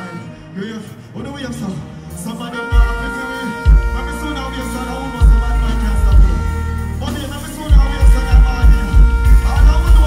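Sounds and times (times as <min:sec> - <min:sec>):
live dancehall music: 0:00.0 - 0:10.0
person singing: 0:02.1 - 0:10.0
heavy pulsing bass beat: 0:02.6 - 0:10.0.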